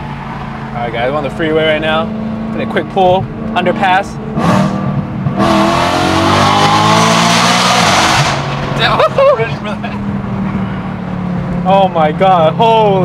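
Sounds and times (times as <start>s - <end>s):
car engine revving: 0.0s - 13.0s.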